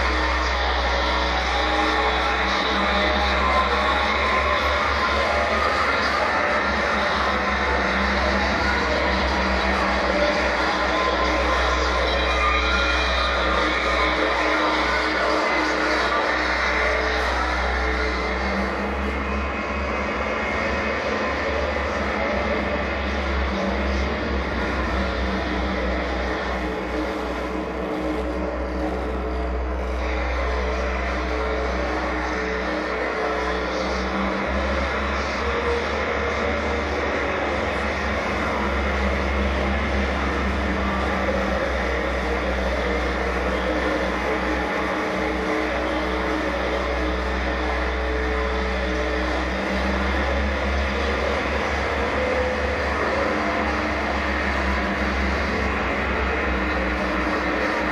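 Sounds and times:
electronic noise drone: 0.0 - 57.9.

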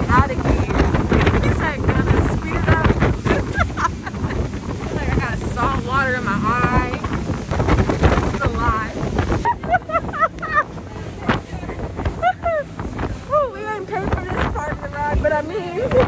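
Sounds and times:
motorboat engine: 0.0 - 16.0
rushing water: 0.0 - 16.0
wind buffeting microphone: 0.0 - 16.0.

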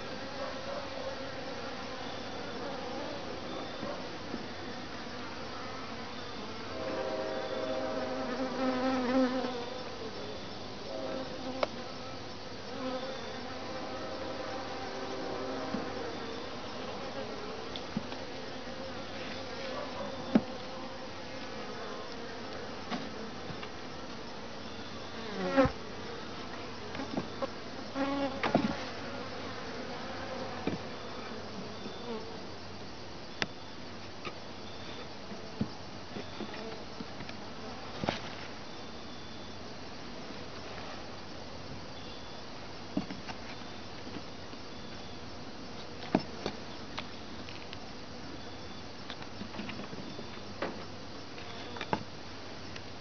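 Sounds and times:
bees buzzing: 0.0 - 32.5.

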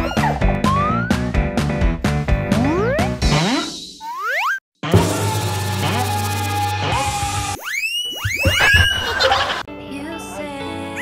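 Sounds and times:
rising whistle-like cartoon swoops: 6.0 - 9.3.

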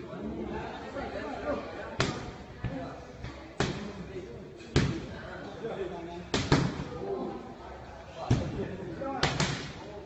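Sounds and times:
voices in a gym: 0.0 - 10.0.

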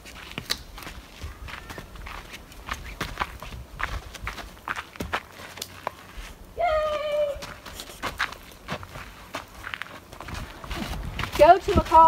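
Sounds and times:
footsteps on dirt trail: 0.0 - 12.0.

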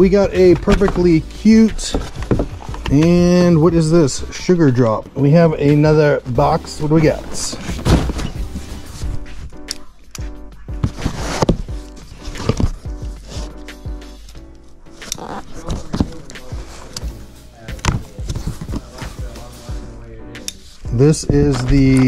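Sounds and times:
background music: 0.0 - 22.0
cardboard scrapes and knocks: 7.0 - 9.5, 10.8 - 13.5.

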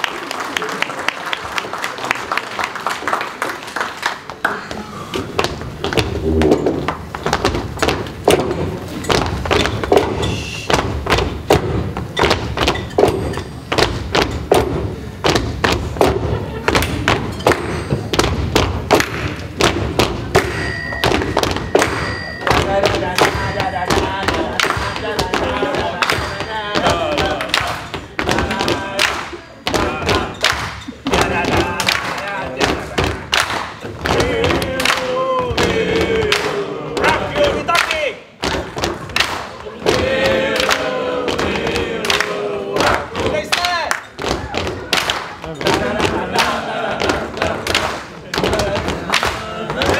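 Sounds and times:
background voices: 22.0 - 33.2.

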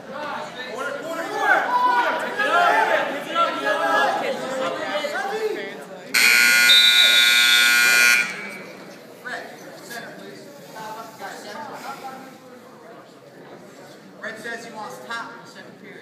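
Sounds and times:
scoreboard buzzer: 6.2 - 8.8.

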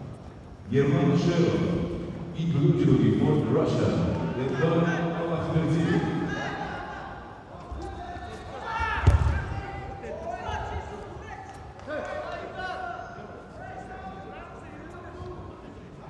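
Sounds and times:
people calling out in echoing hall: 0.0 - 16.0.

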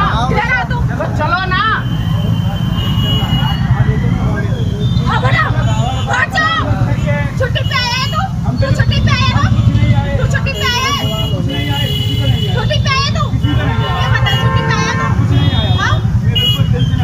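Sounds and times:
idling vehicles and traffic rumble: 0.0 - 17.0
people shouting in argument: 5.0 - 11.7, 12.6 - 16.0.

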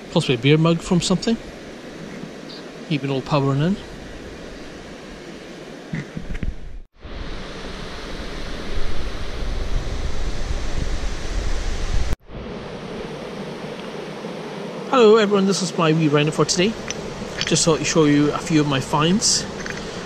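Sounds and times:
wind: 0.0 - 20.0
river water flowing: 12.4 - 20.0.

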